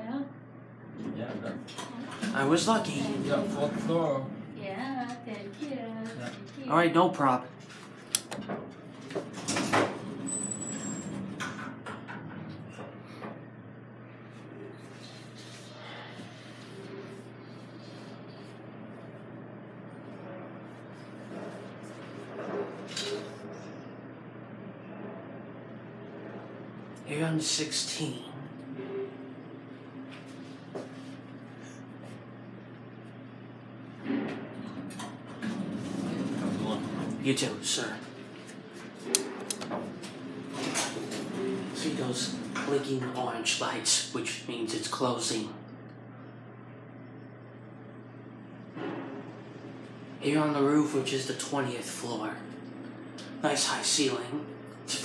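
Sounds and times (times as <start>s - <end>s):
low hum in elevator cab: 0.0s - 55.0s
people talking: 1.0s - 7.4s, 27.1s - 28.4s, 36.3s - 38.1s, 41.8s - 45.6s, 50.2s - 52.5s, 53.4s - 55.0s
elevator doors sliding: 1.7s - 4.4s, 8.8s - 13.5s, 33.9s - 43.2s.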